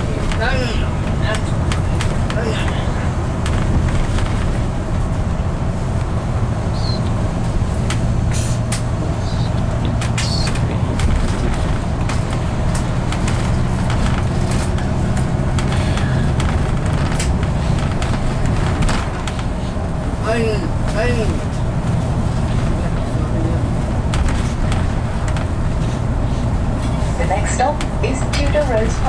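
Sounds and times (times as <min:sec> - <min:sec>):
bus engine droning: 0:00.0 - 0:29.0
rattles and clicks of bodywork: 0:00.0 - 0:29.0
road noise: 0:00.0 - 0:29.0.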